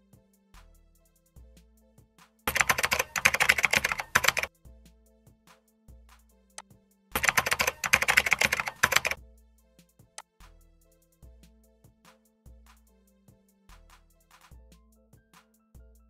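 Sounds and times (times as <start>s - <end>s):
soft background music: 0.0s - 16.0s
computer keyboard typing: 2.5s - 4.5s, 7.2s - 9.2s.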